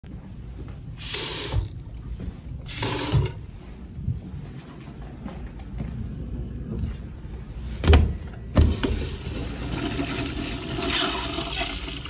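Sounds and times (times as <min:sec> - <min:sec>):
sink faucet water bursts: 0:01.0 - 0:01.8, 0:02.7 - 0:03.4.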